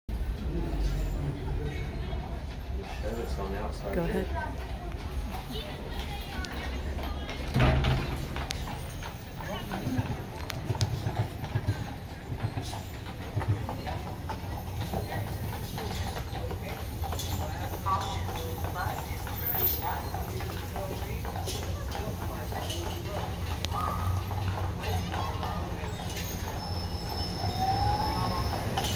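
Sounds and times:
horse hooves clip-clopping: 0:00.1 - 0:28.9
bus driving past: 0:14.2 - 0:28.9.

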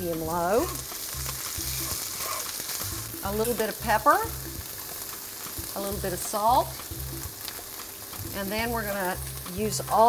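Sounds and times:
vegetables sizzling in a skillet: 0:00.0 - 0:10.0
wooden spoon stirring in a pan: 0:00.4 - 0:02.9.

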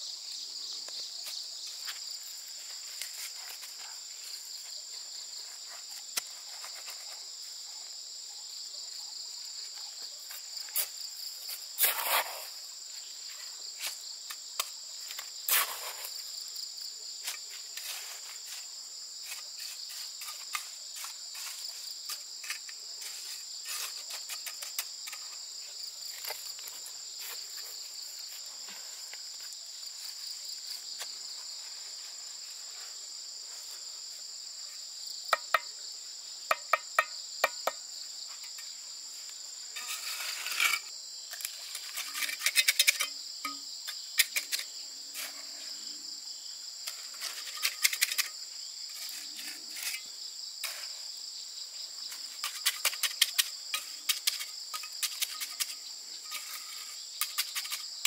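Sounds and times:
insects chorus: 0:00.0 - 0:58.0
trowel tapping and scraping: 0:35.3 - 0:35.7, 0:36.5 - 0:37.8, 0:39.8 - 0:45.4, 0:46.9 - 0:50.9, 0:52.1 - 0:58.0.

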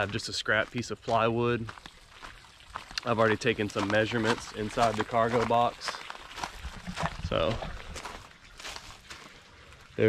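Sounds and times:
faint footsteps on gravel: 0:00.0 - 0:10.0
light outdoor background noise: 0:00.0 - 0:10.0.

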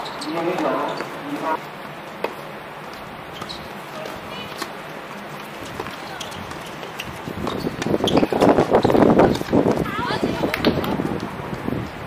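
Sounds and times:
players calling out: 0:00.0 - 0:01.7
footsteps and shoe scuffs: 0:00.0 - 0:09.9.

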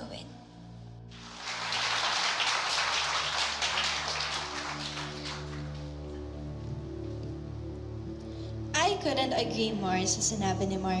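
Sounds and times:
audience applauding: 0:01.2 - 0:06.0.

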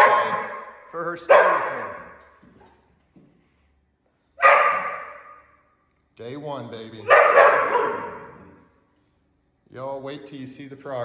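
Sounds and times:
dog barking: 0:00.0 - 0:02.2, 0:04.4 - 0:05.4, 0:07.0 - 0:08.6.

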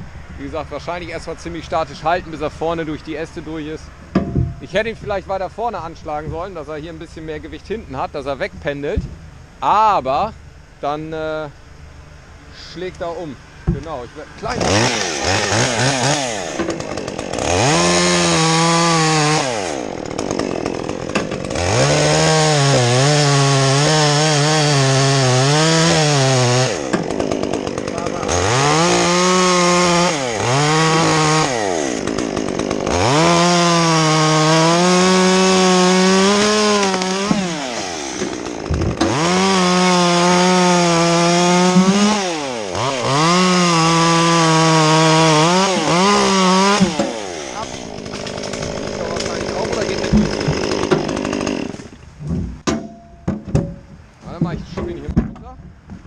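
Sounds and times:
chainsaw cutting through limb: 0:14.4 - 0:52.2.

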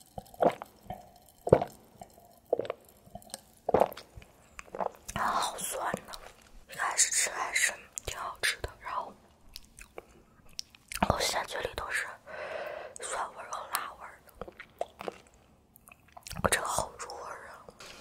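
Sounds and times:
wet mouth clicks: 0:00.2 - 0:06.2, 0:08.0 - 0:08.2, 0:09.5 - 0:11.4, 0:13.7 - 0:16.5
woman half-whispering: 0:05.2 - 0:09.2, 0:16.5 - 0:17.7.

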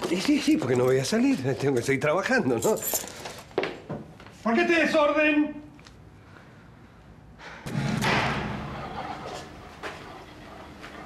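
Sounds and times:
sudden thump: 0:07.7 - 0:08.8.

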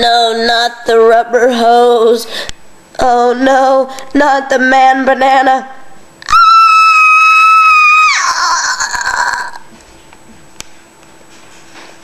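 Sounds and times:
person screaming: 0:06.2 - 0:09.7.

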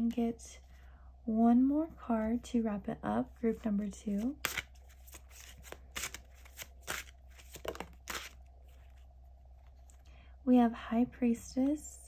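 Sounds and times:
playing cards being shuffled: 0:04.0 - 0:09.8
card pulled from deck: 0:04.4 - 0:08.4.

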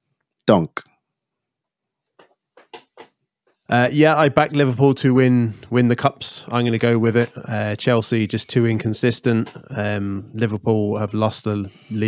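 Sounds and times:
man speaking: 0:00.4 - 0:00.9, 0:03.7 - 0:12.0.

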